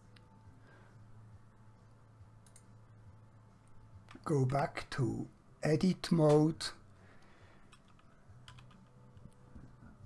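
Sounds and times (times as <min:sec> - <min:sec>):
computer keyboard clicks: 0:07.7 - 0:09.4.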